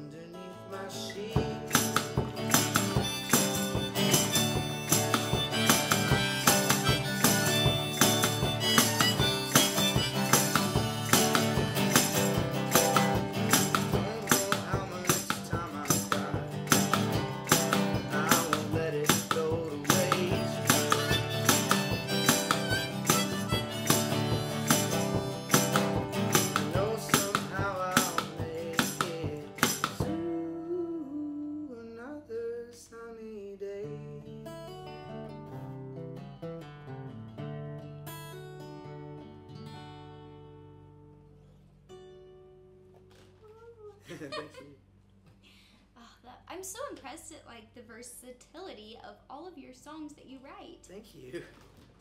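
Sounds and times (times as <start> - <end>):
acoustic guitar strumming: 0.0 - 30.7, 33.8 - 43.4
harmonica: 2.5 - 13.6, 19.5 - 26.5.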